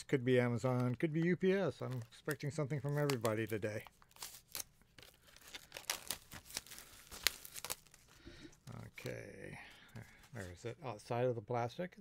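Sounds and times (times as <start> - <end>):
plastic wrap crinkling and tearing: 1.7 - 9.1.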